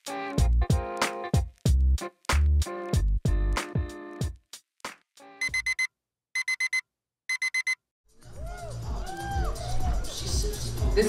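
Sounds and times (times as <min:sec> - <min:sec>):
digital alarm clock beeping: 0:05.4 - 0:07.8.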